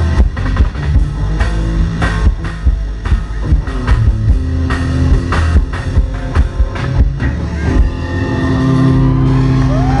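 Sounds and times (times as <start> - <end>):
drums: 0.0 - 10.0
electric guitar: 0.0 - 10.0.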